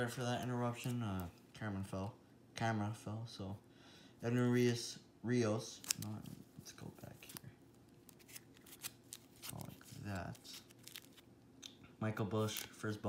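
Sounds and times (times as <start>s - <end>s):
plastic crinkling: 7.2s - 11.3s.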